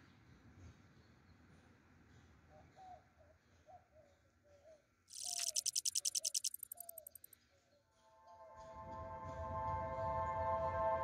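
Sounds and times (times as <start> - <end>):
insect high-pitched trill: 5.1 - 7.3.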